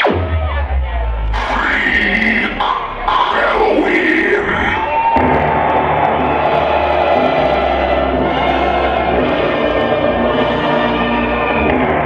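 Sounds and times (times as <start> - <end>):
sweeping synth sounds: 0.0 - 5.1
loud drum and bass music: 0.0 - 7.2
crowd yelling: 0.0 - 12.0.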